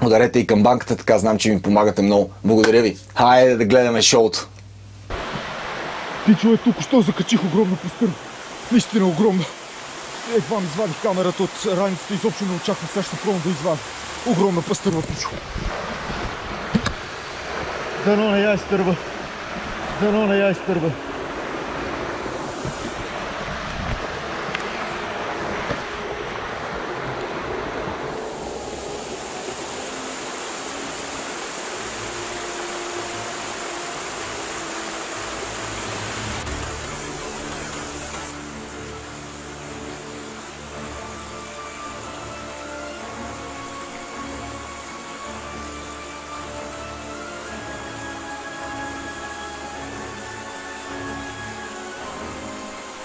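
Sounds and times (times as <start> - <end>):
rippling stream: 5.0 - 53.0
background music: 16.3 - 53.0.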